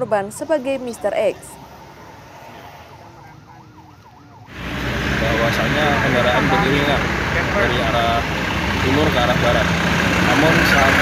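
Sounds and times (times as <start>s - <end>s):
engine and road noise: 0.0s - 11.0s
faint emergency siren: 0.8s - 7.9s.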